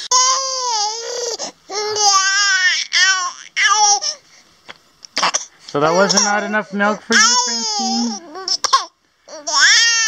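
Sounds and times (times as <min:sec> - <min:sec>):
infant crying: 0:00.0 - 0:04.2, 0:05.2 - 0:10.0.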